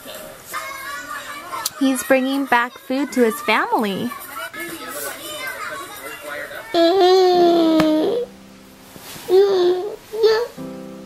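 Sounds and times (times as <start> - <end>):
children chattering: 0.0 - 8.3.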